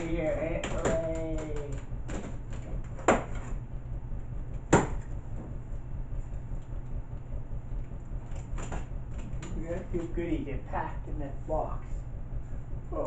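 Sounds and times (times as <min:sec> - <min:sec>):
low hum: 0:00.0 - 0:13.0
cardboard flaps slapping box: 0:00.5 - 0:03.5.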